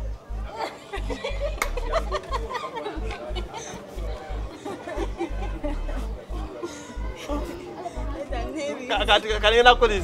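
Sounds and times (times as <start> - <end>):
music with pulsing bass beat: 0.0 - 10.0
people talking and chattering: 0.0 - 10.0.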